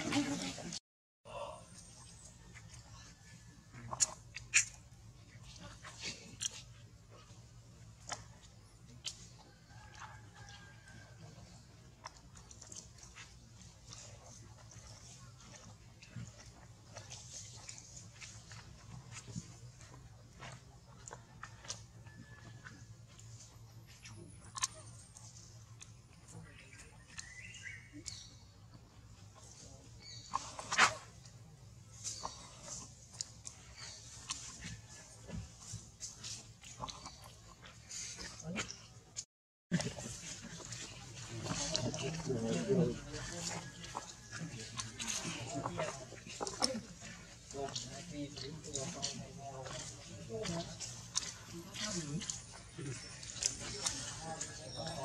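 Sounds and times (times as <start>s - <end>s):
monkey chewing fruit: 0.0s - 0.8s, 1.5s - 55.0s.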